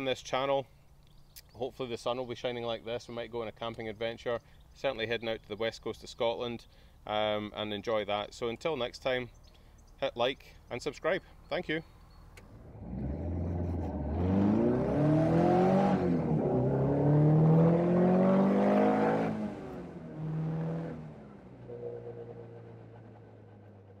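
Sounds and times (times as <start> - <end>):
car engine accelerating hard: 12.5 - 24.0.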